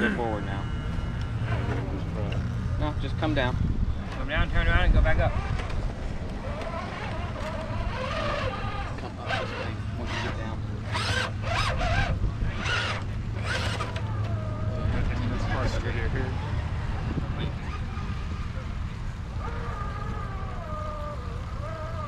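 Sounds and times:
people talking indistinctly: 0.0 - 5.6, 6.4 - 22.0.

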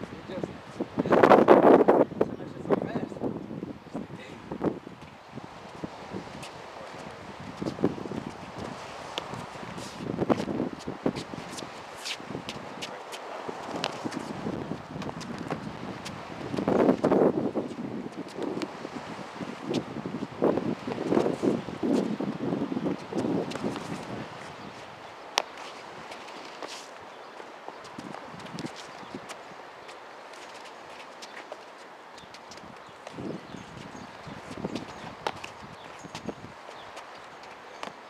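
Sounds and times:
wind gusts on microphone: 0.0 - 38.0
shoes scuffing on concrete: 5.0 - 14.4, 23.1 - 38.0.

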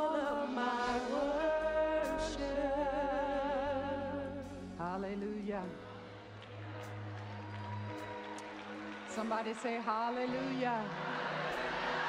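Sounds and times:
faint crowd noise: 1.8 - 12.0.

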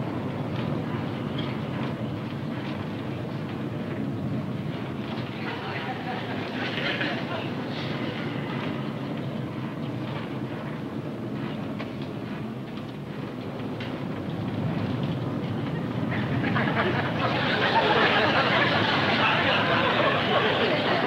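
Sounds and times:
airliner engines droning in cabin: 0.0 - 21.0
turbulence rattling rumble: 0.0 - 21.0.

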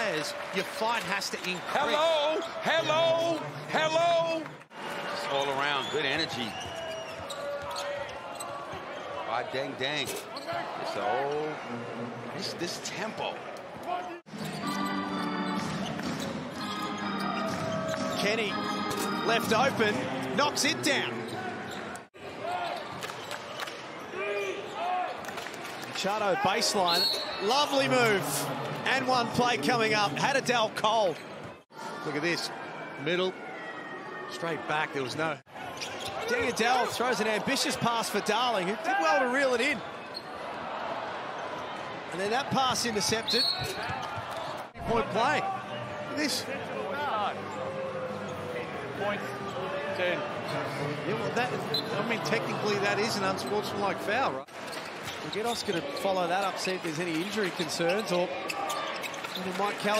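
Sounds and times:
sneakers squeaking on floor: 5.8 - 8.8, 10.1 - 10.7, 14.3 - 19.2, 21.2 - 22.1, 35.6 - 36.6, 43.2 - 44.7, 54.6 - 59.6.

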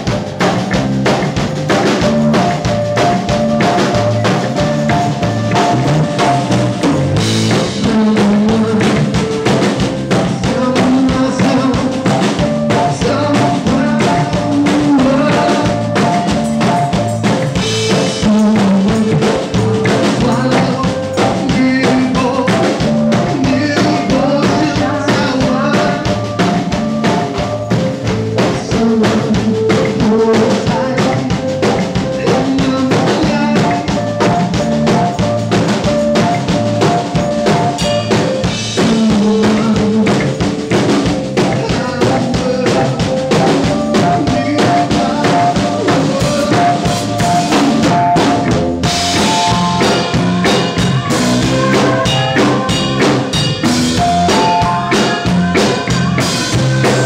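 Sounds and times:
drum kit beat: 0.0 - 57.0
live band playing loud music: 0.0 - 57.0
upright bass: 0.0 - 57.0.

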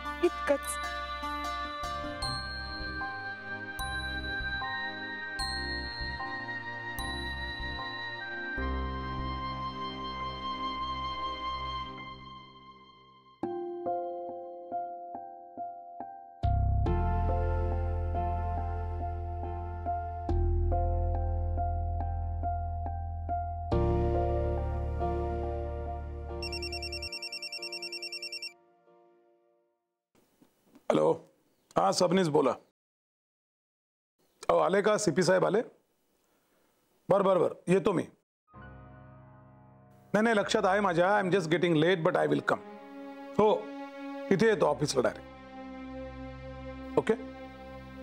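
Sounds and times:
slow background music: 0.0 - 27.9, 38.6 - 48.0
mobile phone ringing trill: 26.4 - 28.6.

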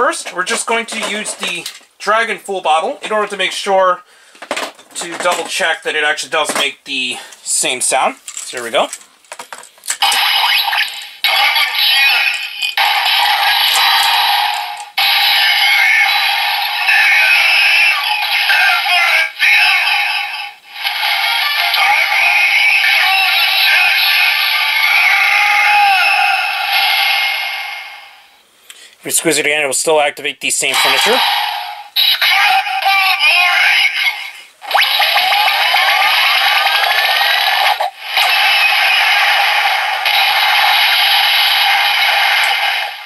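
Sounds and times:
toy electronic voice: 10.1 - 12.8, 15.2 - 27.4, 32.0 - 39.5.

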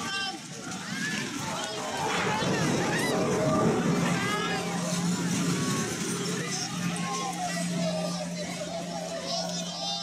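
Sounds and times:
crowd shouting and crying out: 0.0 - 10.0
heavy rumble of collapsing buildings: 1.4 - 7.8.

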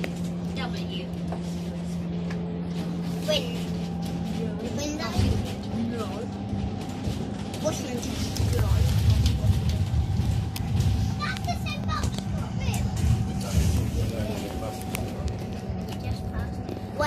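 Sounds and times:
bus engine rumble: 0.0 - 17.0
indistinct passenger chatter: 0.0 - 17.0.

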